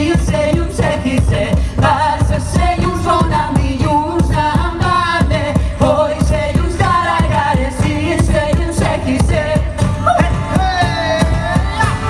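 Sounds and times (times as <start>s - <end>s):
woman singing: 0.0s - 10.5s
folk instruments playing: 0.0s - 12.0s
steady drum beat: 0.0s - 12.0s.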